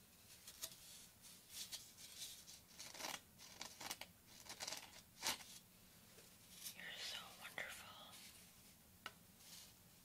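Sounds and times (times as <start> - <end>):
woman whispering softly: 6.7 - 8.4.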